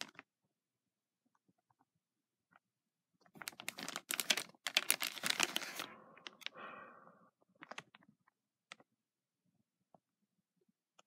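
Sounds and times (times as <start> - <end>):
plastic bag crinkling: 3.2 - 6.6, 7.6 - 8.2.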